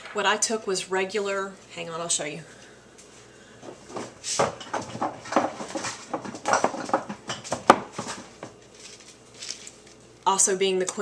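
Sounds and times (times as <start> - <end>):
containers knocking and clattering: 3.9 - 8.6.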